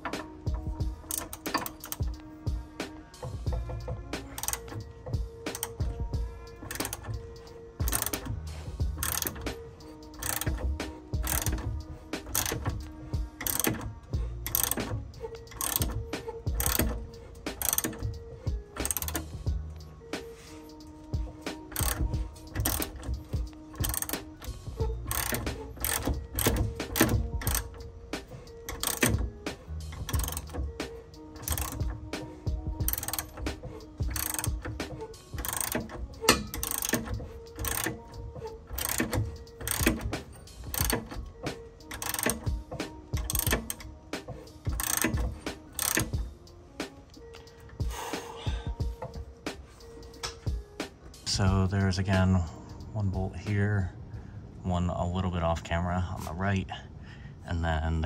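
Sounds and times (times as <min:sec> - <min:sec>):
ratchet wrench clicking: 0:00.0 - 0:19.9, 0:20.8 - 0:51.3
background music: 0:00.0 - 0:58.0.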